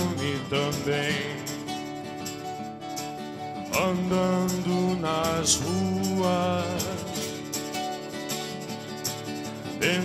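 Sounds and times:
person singing: 0.0 - 1.8, 3.7 - 7.5, 9.8 - 10.0
strummed acoustic guitar: 0.0 - 10.0.

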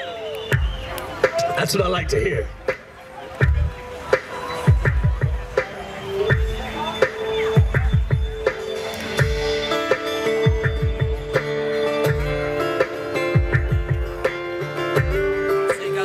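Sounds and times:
kick drum beat: 0.5 - 2.7, 3.4 - 3.8, 4.7 - 5.6, 6.3 - 6.7, 7.6 - 8.5, 13.4 - 14.2
bass guitar: 3.4 - 3.8, 9.2 - 16.0
strummed guitars: 6.3 - 16.0.

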